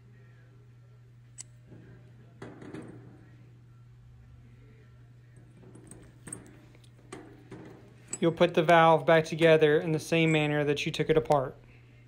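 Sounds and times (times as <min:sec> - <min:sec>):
steady low hum: 0:00.0 - 0:12.0
metal parts clicking and rattling: 0:05.6 - 0:08.8.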